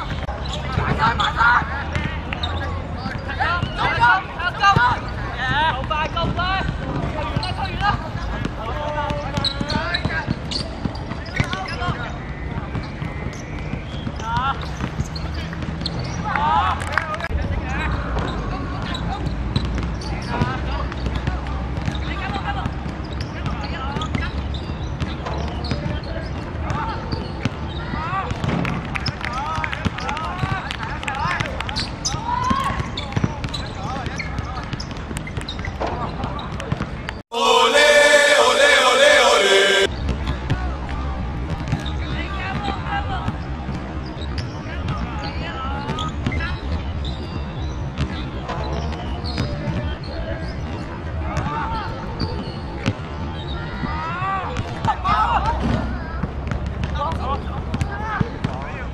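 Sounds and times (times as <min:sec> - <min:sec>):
players calling and shouting: 0:37.3 - 0:39.9.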